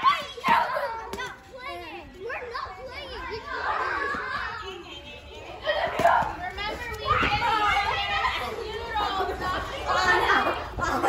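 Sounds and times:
children shouting excitedly: 0.0s - 11.0s.

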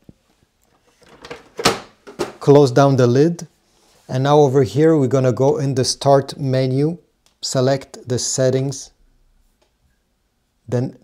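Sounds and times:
plastic scanner lid closing: 1.1s - 2.4s
lid thud: 1.2s - 2.4s.

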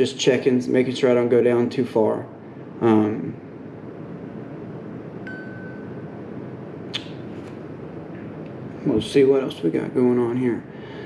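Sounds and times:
low room noise: 0.0s - 11.0s
thin high ping: 5.2s - 6.0s
sharp click: 6.9s - 7.6s.

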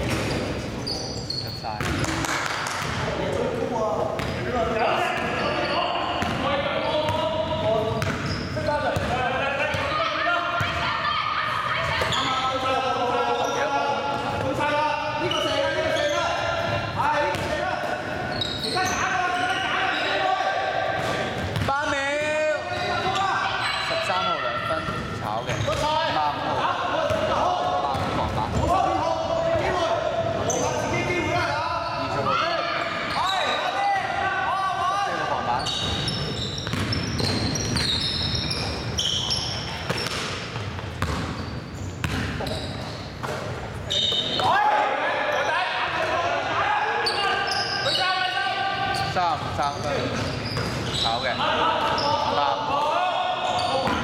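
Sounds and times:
players calling out: 43.8s - 54.0s.

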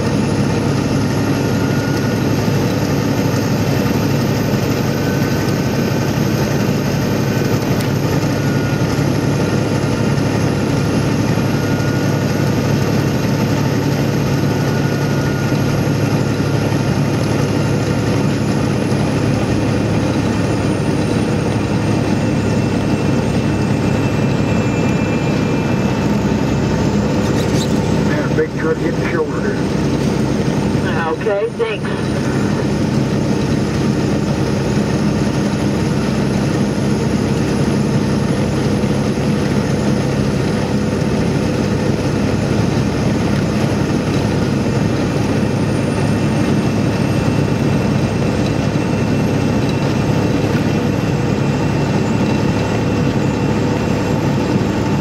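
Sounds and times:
vehicle engine and road noise: 0.0s - 55.0s.

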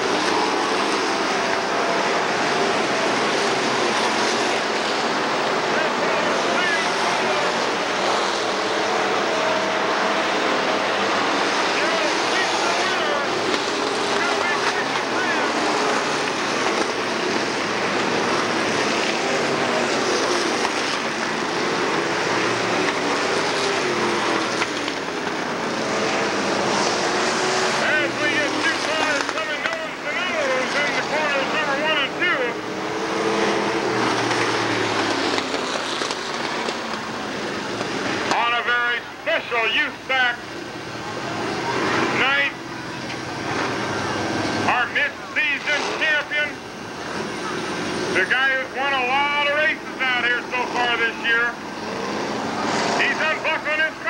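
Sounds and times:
race cars passing at speed: 0.0s - 54.0s
voices: 0.0s - 54.0s.

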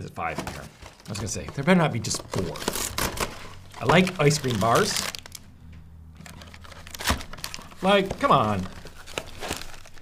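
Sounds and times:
plastic wrapper crinkling: 0.7s - 5.5s, 6.1s - 10.0s
cardboard box being handled: 6.3s - 10.0s.

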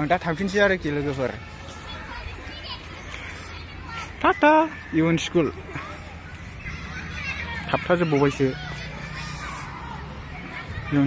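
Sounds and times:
distant children playing: 0.0s - 11.0s.

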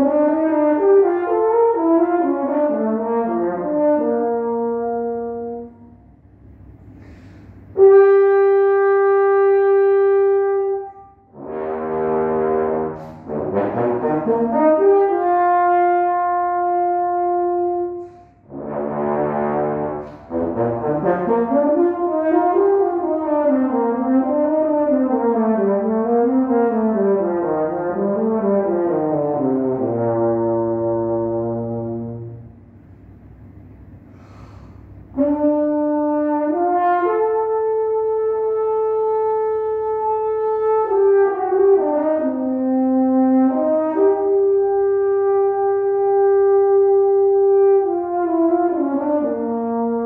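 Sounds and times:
french horn playing: 0.0s - 6.2s, 6.9s - 32.8s, 33.8s - 50.0s.

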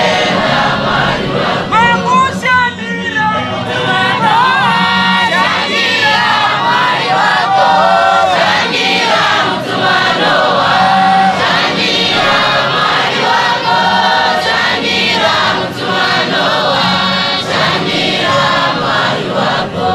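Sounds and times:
congregation singing a hymn: 0.0s - 2.2s, 3.1s - 19.9s.

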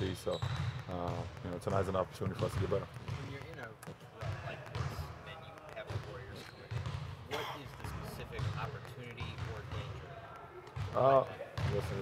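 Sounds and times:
basketballs bouncing on gym court: 0.0s - 12.0s.

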